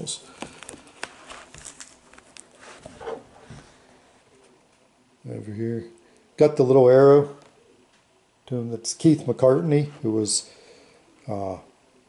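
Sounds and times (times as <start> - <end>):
plastic sleeves crinkling: 0.0 - 3.9.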